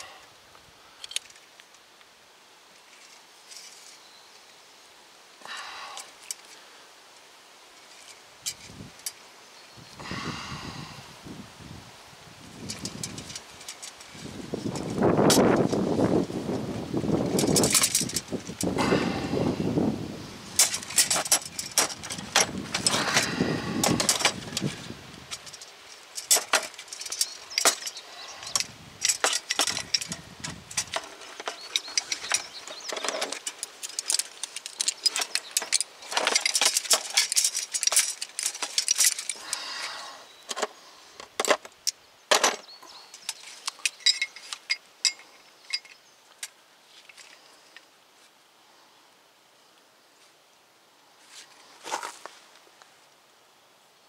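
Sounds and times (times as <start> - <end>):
metal tool clicks and rattles: 1.0 - 1.4, 12.6 - 15.8, 17.3 - 18.7, 20.6 - 24.7, 25.3 - 39.6, 43.2 - 47.4.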